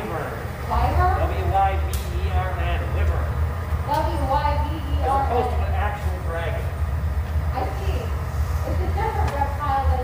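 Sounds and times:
people talking: 0.0s - 6.7s, 7.5s - 10.0s
gas furnace rumble: 0.0s - 10.0s.

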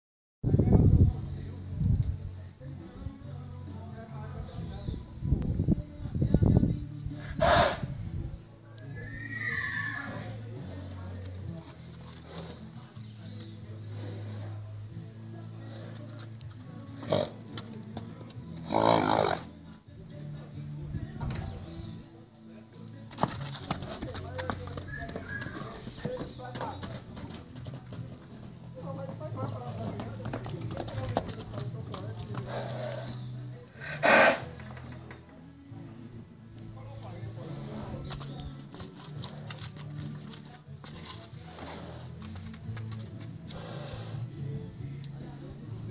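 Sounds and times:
faint background music: 0.4s - 45.9s
horse neighing: 7.2s - 7.9s, 8.9s - 10.4s, 18.6s - 19.5s, 24.8s - 26.2s, 33.8s - 34.6s
horse snorting: 7.2s - 8.0s, 12.0s - 12.9s, 13.6s - 14.8s, 17.0s - 17.5s, 18.6s - 19.6s, 29.6s - 34.8s, 37.3s - 40.4s, 41.0s - 44.3s.

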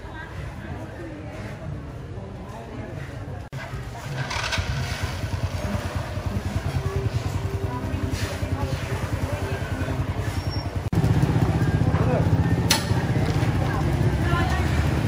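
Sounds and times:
small engine idling: 3.6s - 15.0s.

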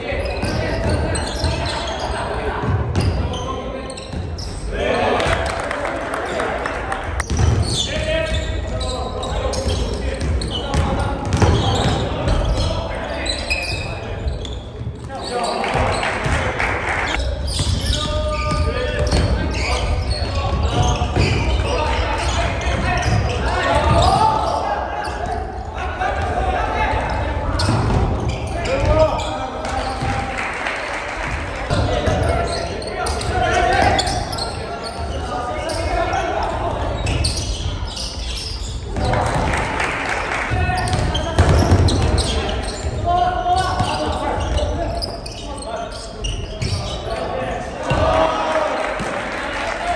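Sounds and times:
players calling and shouting: 0.0s - 49.9s.

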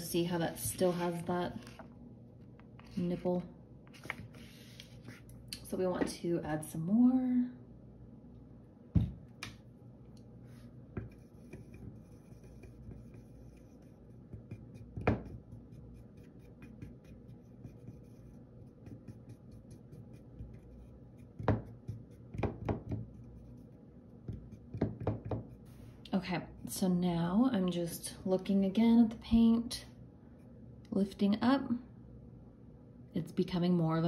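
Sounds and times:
paintbrush scraping plastic palette: 10.5s - 22.3s
brush knocking on palette: 10.9s - 23.6s, 24.2s - 25.6s.

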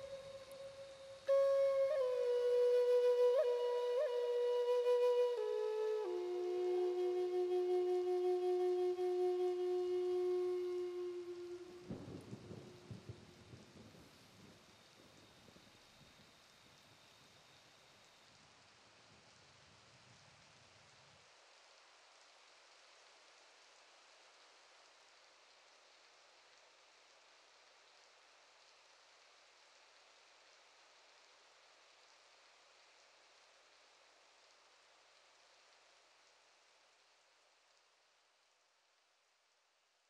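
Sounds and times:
held flute note: 0.0s - 12.9s
faint steady hiss: 0.0s - 40.0s.

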